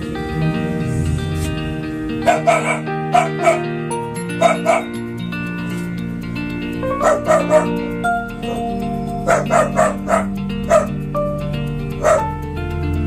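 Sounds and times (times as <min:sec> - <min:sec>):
background music: 0:00.0 - 0:13.0
dog barking: 0:02.2 - 0:03.7, 0:04.4 - 0:04.9, 0:07.0 - 0:07.8, 0:08.4 - 0:11.0, 0:12.0 - 0:12.3.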